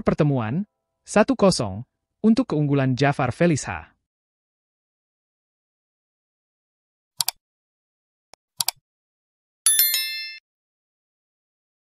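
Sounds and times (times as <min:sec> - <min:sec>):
mouse double click: 0:07.2 - 0:07.4, 0:08.6 - 0:08.8
notification bell chime: 0:09.7 - 0:10.4.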